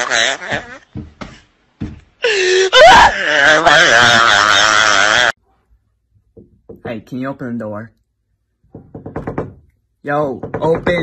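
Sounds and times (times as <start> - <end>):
knocking on a door: 0.5 - 2.1, 6.3 - 7.1, 8.6 - 11.0.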